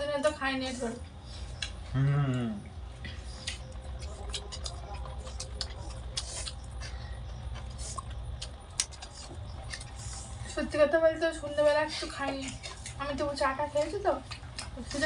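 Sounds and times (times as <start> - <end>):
people chewing: 0.0 - 15.0
steady low hum: 0.0 - 15.0.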